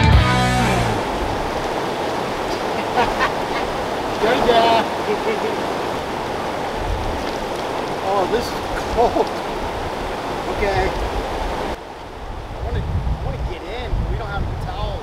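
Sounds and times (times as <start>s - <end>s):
background music: 0.0s - 1.0s
river rapids rushing: 0.0s - 12.7s
faint voices: 2.5s - 5.8s.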